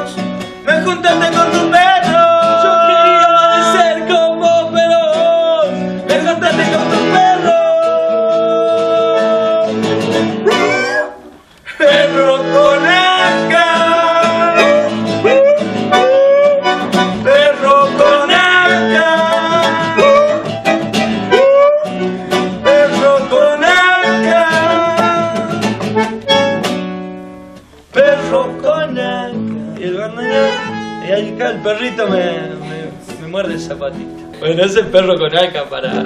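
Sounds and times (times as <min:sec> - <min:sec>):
acoustic guitar strumming: 0:00.0 - 0:36.0
bandoneon reed melody: 0:00.0 - 0:36.0.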